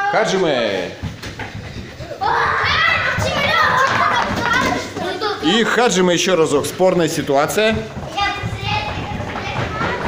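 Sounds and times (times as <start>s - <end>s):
children's footsteps pattering: 0.0s - 10.0s
children calling out loudly: 2.2s - 5.5s.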